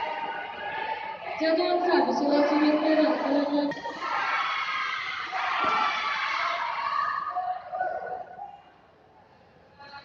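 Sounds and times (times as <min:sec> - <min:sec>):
spectators shouting and cheering: 0:00.0 - 0:08.6.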